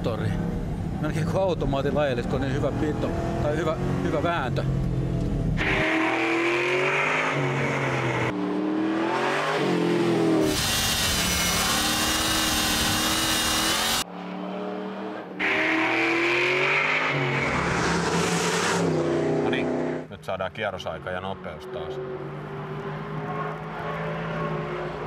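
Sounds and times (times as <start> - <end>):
car engine accelerating hard: 0.2 - 20.1.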